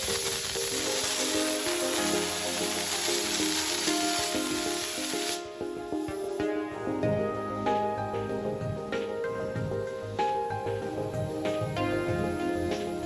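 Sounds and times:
plasma cutting torch hissing: 0:00.0 - 0:06.4
background music: 0:00.0 - 0:13.0.

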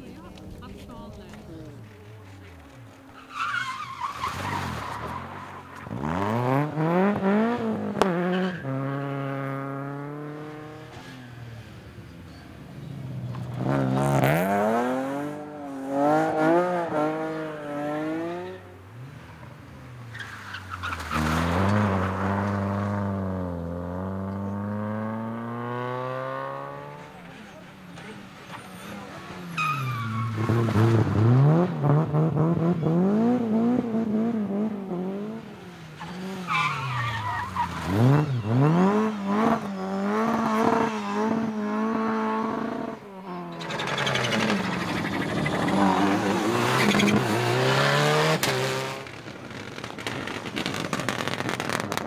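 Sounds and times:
rally car engines revving past: 0:00.0 - 0:52.0.

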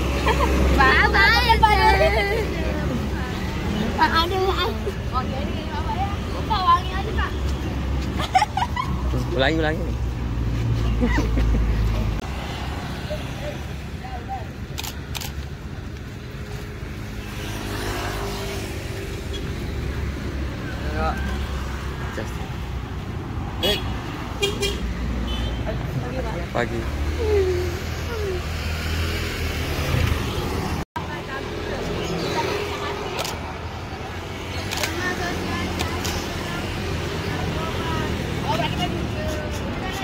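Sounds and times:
scooters and cars passing: 0:00.0 - 0:40.0
young voices chatting: 0:00.1 - 0:09.9, 0:25.6 - 0:28.7, 0:31.0 - 0:40.0.

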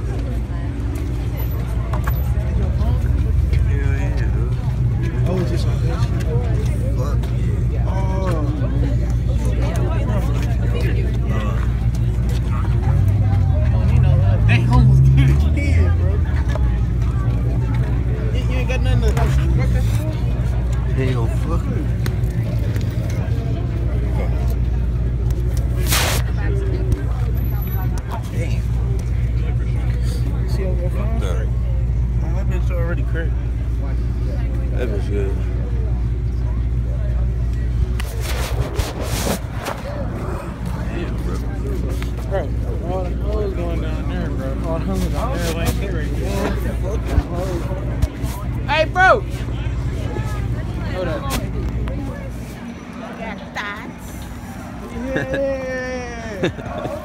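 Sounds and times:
indistinct voices: 0:33.3 - 0:57.0.

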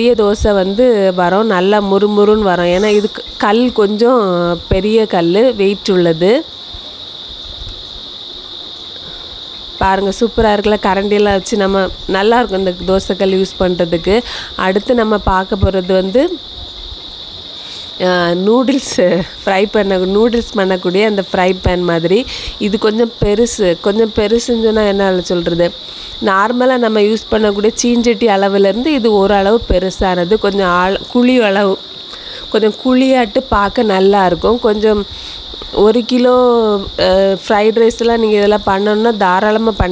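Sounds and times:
person talking: 0:00.0 - 0:06.4, 0:09.8 - 0:16.4, 0:17.8 - 0:31.8, 0:32.4 - 0:39.9
insect chorus chirring: 0:00.0 - 0:39.9.

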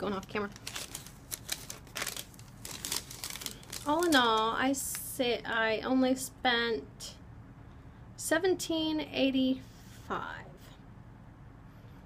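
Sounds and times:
paper receipt rustling: 0:00.0 - 0:05.0.

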